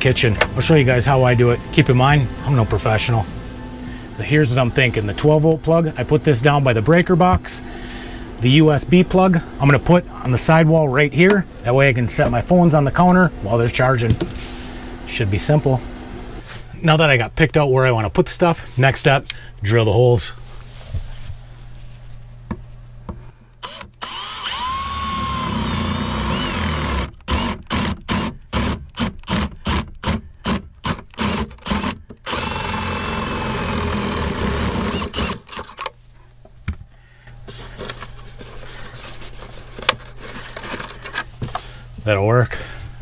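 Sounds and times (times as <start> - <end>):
cordless drill whining: 23.6 - 35.9.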